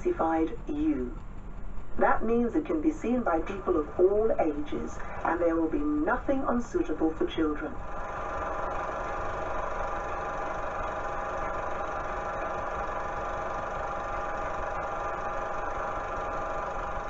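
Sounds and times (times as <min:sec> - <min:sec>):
steady hum of held tones: 0:00.0 - 0:17.0.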